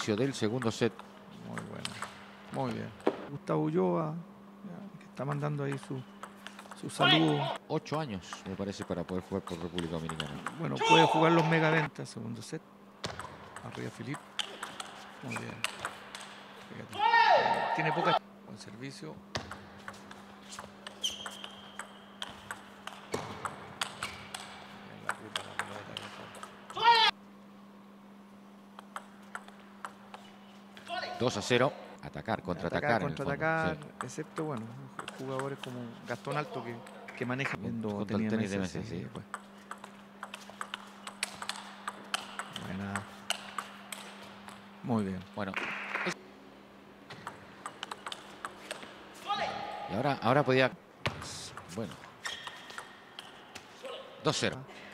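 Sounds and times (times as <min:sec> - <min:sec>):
table tennis ball clicks: 0:01.5 - 0:02.2, 0:05.2 - 0:06.9, 0:19.4 - 0:26.8, 0:28.8 - 0:30.3, 0:33.8 - 0:35.8, 0:39.2 - 0:44.6, 0:47.1 - 0:49.0
person shouting: 0:07.0 - 0:07.6, 0:10.8 - 0:11.5, 0:16.9 - 0:18.2, 0:26.7 - 0:27.2, 0:49.2 - 0:49.9.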